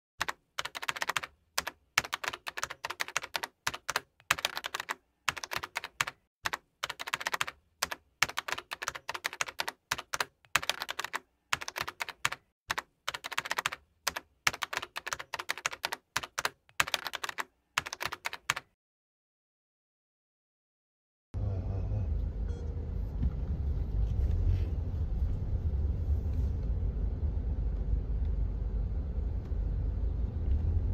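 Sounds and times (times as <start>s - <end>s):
computer keyboard typing: 0.2s - 18.7s.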